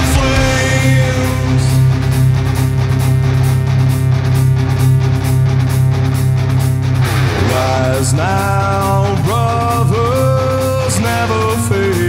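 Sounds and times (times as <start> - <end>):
steady driving drum beat: 0.0 - 5.0
bass guitar: 0.0 - 12.0
distorted electric guitars: 0.0 - 12.0.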